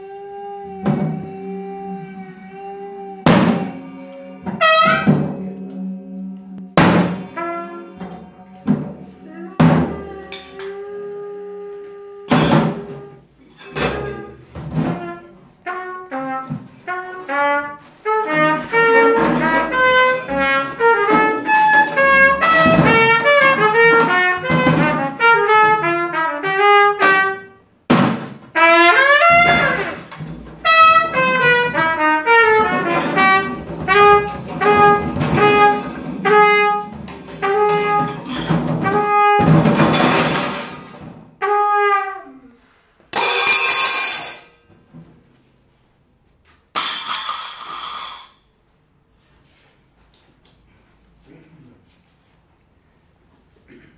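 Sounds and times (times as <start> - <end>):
trumpet playing quick runs: 3.3 - 10.2, 13.8 - 27.6, 28.6 - 42.5
floor tom drum struck: 6.6 - 9.0
loud noisy crashes: 6.8 - 7.6.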